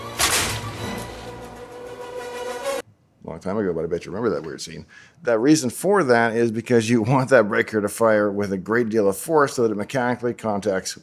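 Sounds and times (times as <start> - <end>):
circuit breaker crack: 0.0 - 1.1
film music: 0.0 - 2.8.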